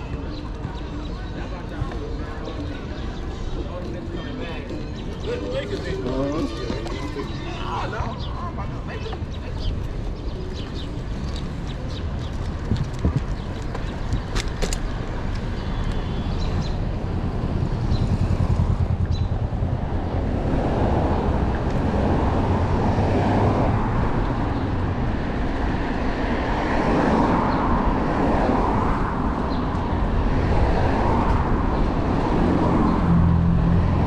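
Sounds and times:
city street traffic: 0.0 - 34.0
wind rumble on microphone: 10.2 - 34.0.

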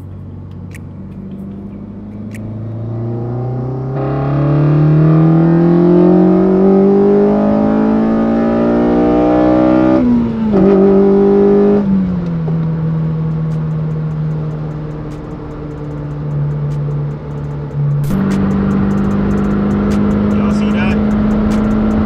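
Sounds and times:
car engine revving through gears: 0.0 - 22.0.

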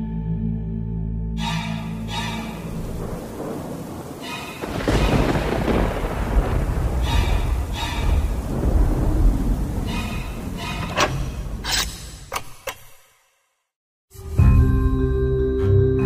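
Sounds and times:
thunder rumble: 2.2 - 11.6
rain-like hiss: 2.5 - 9.9.

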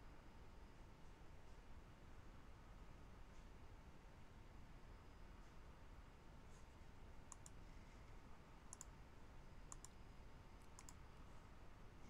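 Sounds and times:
computer mouse clicks: 7.3 - 7.6, 8.7 - 9.0, 9.7 - 10.0, 10.6 - 11.0.

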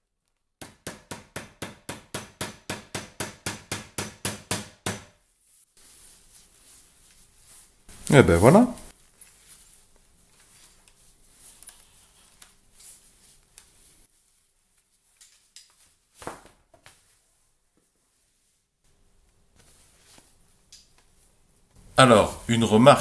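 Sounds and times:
umbrella fabric rustling: 5.2 - 22.5.

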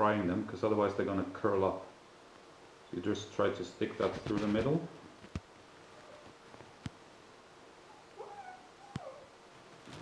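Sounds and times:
high-pitched wavering cry: 7.9 - 9.3.

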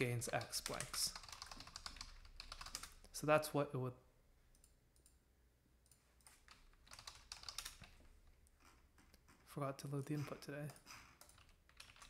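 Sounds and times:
faint keyboard typing: 0.0 - 3.2, 4.5 - 5.2, 5.8 - 9.5, 10.1 - 12.0.

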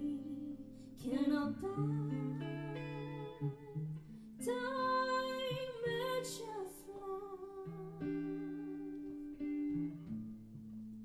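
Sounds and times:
woman singing a long note: 0.0 - 3.8, 4.4 - 9.0
electric guitar chords: 0.0 - 11.0.

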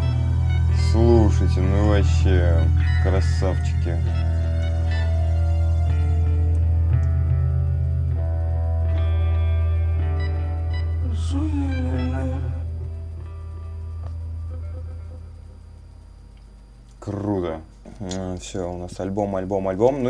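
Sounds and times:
held low bass note: 0.0 - 16.0.

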